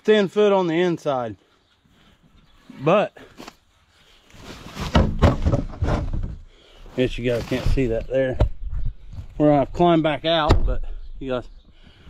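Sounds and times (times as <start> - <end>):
knocks: 4.9 - 6.4.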